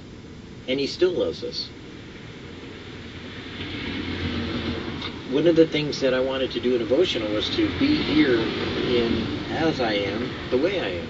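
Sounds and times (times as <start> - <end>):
faint hiss: 0.0 - 11.0
low background rumble: 0.0 - 11.0.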